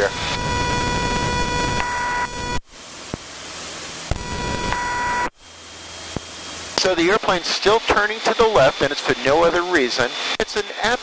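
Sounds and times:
cockpit engine and wind noise: 0:00.0 - 0:11.0.

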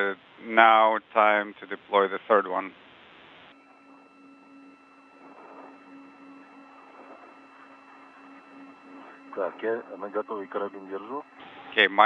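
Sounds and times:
radio static hiss: 0:00.0 - 0:12.0
low hum: 0:02.7 - 0:12.0
faint whistle tones: 0:03.5 - 0:12.0.

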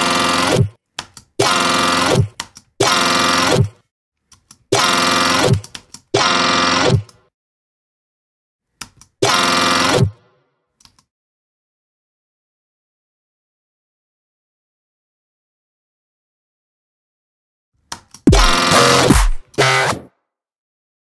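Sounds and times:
synth bass bursts with pitch drop: 0:18.3 - 0:19.9.

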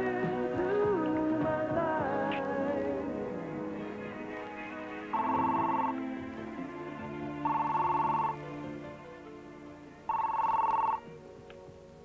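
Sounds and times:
soft background music: 0:00.0 - 0:12.0
telephone ringing: 0:05.1 - 0:06.1, 0:07.4 - 0:08.5, 0:10.1 - 0:11.1.

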